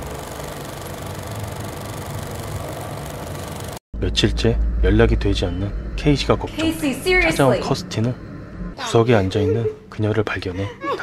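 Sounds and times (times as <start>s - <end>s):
film projector whirring hiss: 0.0s - 3.8s
low hum: 0.0s - 10.9s.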